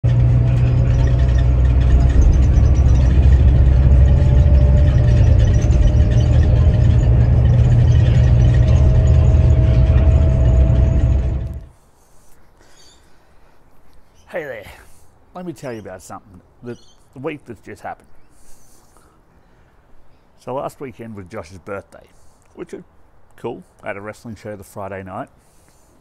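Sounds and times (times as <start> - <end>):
thin whine rising in pitch: 0.0 - 11.7
bus engine and road rumble: 0.0 - 11.8.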